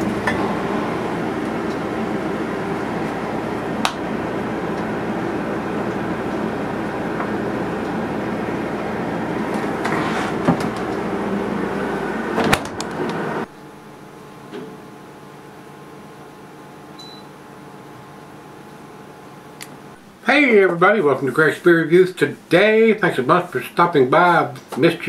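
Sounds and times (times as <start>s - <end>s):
refrigerator humming: 0.0s - 25.0s.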